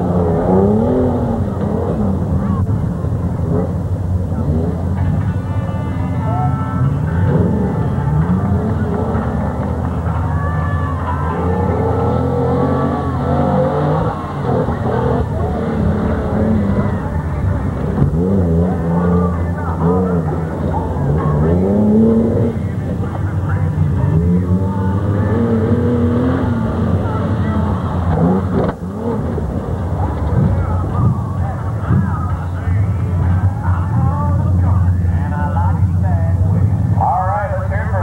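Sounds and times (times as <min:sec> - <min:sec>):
pickup truck engine revving: 0:00.0 - 0:38.0.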